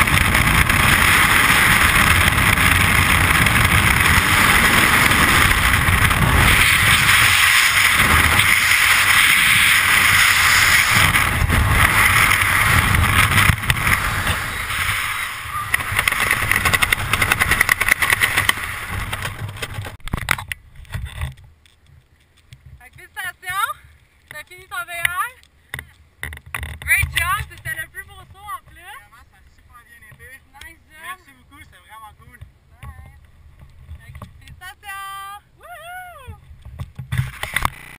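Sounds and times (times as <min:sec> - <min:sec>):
wind rushing past microphone: 0:00.0 - 0:21.4.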